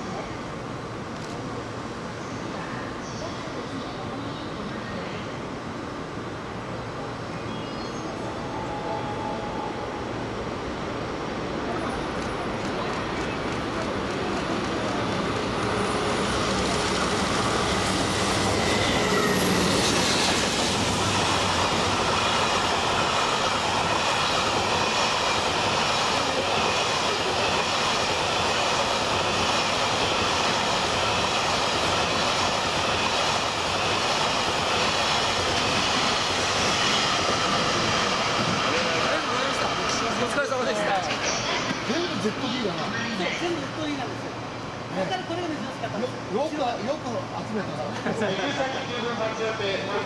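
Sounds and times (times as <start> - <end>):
train wheels rolling on rails: 10.0 - 47.6.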